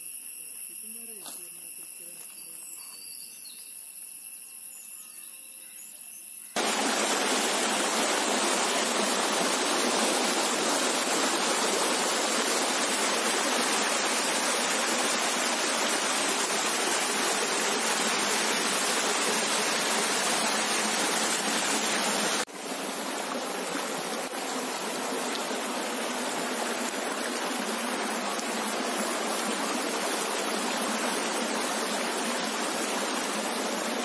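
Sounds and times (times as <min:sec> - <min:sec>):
faint high-pitched tones: 0:00.0 - 0:06.6
water rushing over rocks: 0:06.6 - 0:34.0.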